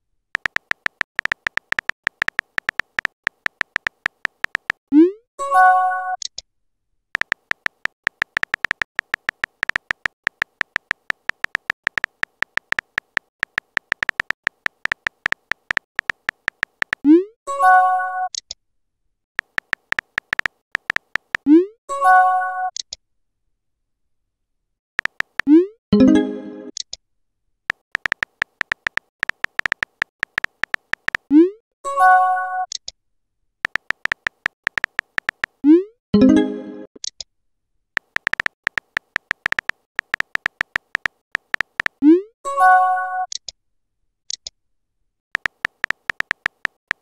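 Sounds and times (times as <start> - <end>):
keyboard tap clicks: 0.4 - 4.8, 7.2 - 17.1, 19.4 - 21.5, 25.0 - 25.5, 27.7 - 31.2, 33.6 - 35.6, 38.0 - 42.0, 45.4 - 47.0.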